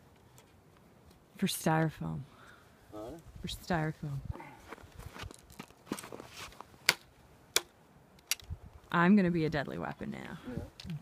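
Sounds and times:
soft rustling and crunching: 0:03.2 - 0:06.9
crossbow clicks: 0:06.9 - 0:08.5.

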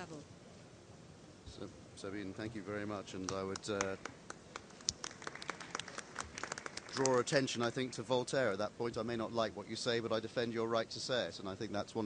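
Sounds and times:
light scattered applause: 0:03.2 - 0:08.2.

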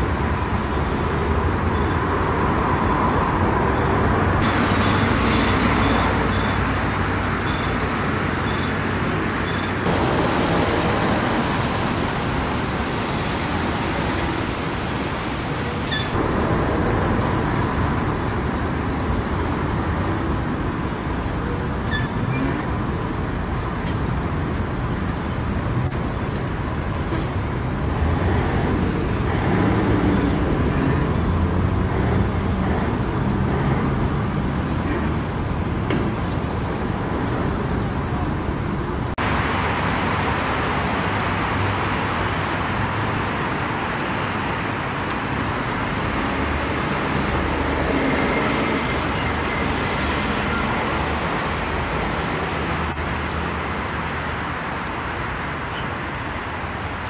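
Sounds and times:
passing cars on busy road: 0:00.0 - 0:57.0.

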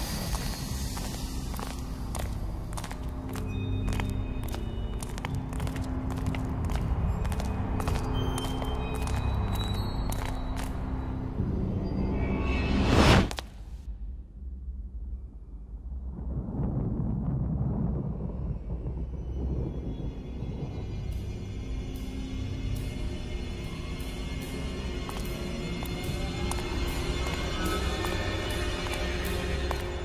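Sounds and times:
tense film score music: 0:00.0 - 0:30.0
low rumbling drone: 0:13.9 - 0:30.0.

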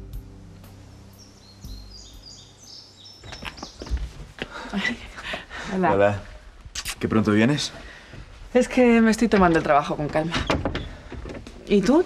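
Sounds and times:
low sustained music notes: 0:00.0 - 0:03.2
birds chirping: 0:01.0 - 0:06.4, 0:07.4 - 0:12.0.

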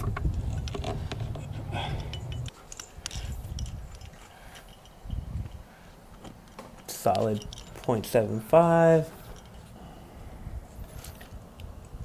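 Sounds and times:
low rumble: 0:00.0 - 0:02.5
metallic clicks of climbing gear: 0:00.0 - 0:08.2, 0:09.1 - 0:09.8.

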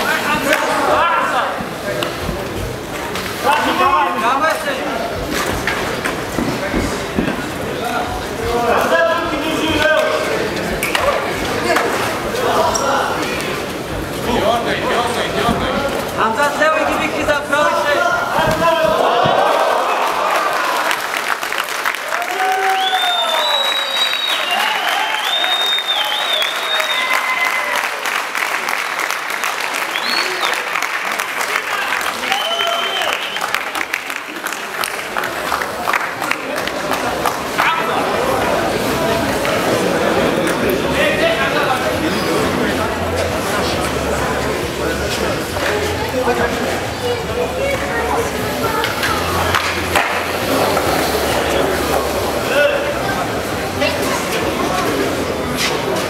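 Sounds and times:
crowd shouting: 0:17.9 - 0:20.9
crowd applause and cheers: 0:18.4 - 0:41.7.

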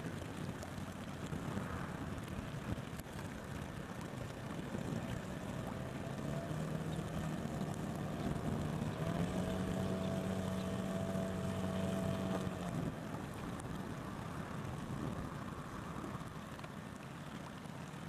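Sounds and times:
motor boat engine revving: 0:04.5 - 0:13.9.

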